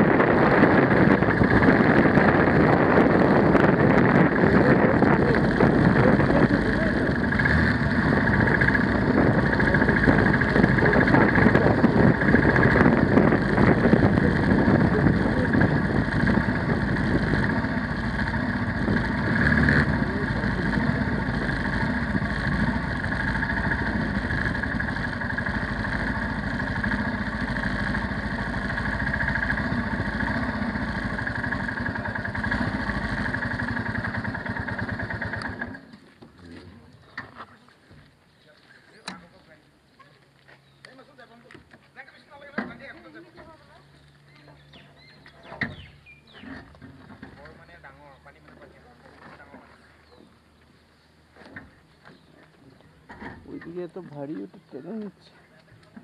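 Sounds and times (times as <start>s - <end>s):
wind rush on microphone: 0.0s - 7.1s, 8.1s - 17.8s
motorcycle engine running: 0.0s - 37.4s, 42.3s - 50.6s.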